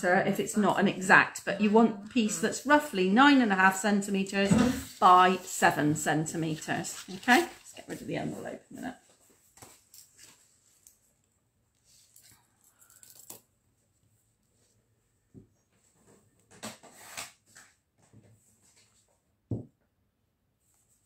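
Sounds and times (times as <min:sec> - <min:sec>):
paper and card rustling: 0:04.7 - 0:08.4.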